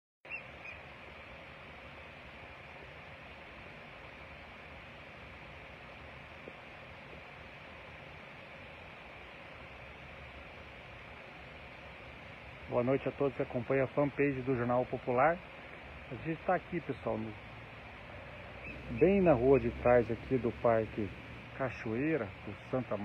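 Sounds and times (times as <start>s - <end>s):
background hiss: 0.3s - 23.0s.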